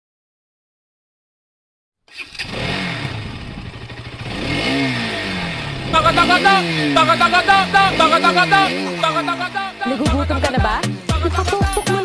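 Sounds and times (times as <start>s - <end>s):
motorcycle engine revving: 2.1s - 11.5s
music with chirpy beat: 6.0s - 12.0s.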